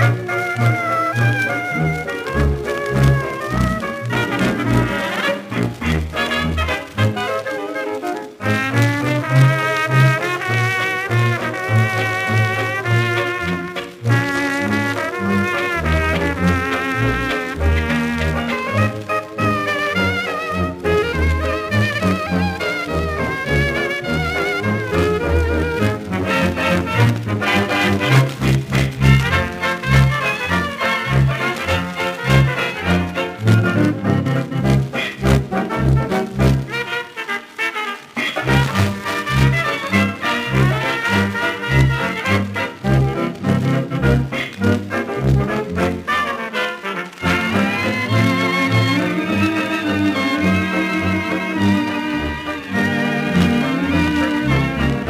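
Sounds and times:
dance orchestra on old record: 0.0s - 55.0s.

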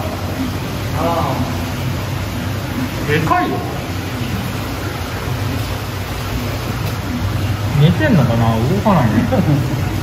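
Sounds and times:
water circulating in tank: 0.0s - 10.0s.

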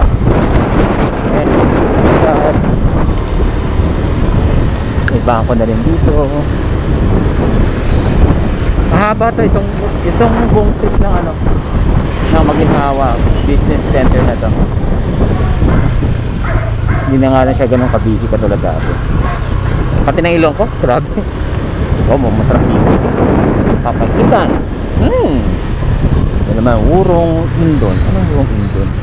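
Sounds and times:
road noise: 0.0s - 29.0s
wind rushing over microphone: 0.0s - 29.0s
scooter engine humming: 14.4s - 29.0s.

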